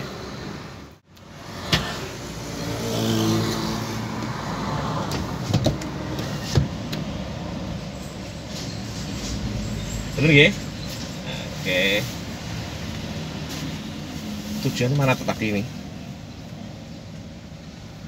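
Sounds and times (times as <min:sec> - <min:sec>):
road traffic hum: 0:00.0 - 0:18.0
vehicle passing: 0:01.4 - 0:06.2.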